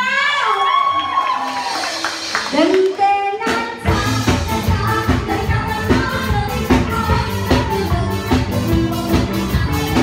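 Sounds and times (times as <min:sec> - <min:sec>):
loud live band music: 0:00.0 - 0:10.0
crowd clapping: 0:00.7 - 0:03.1.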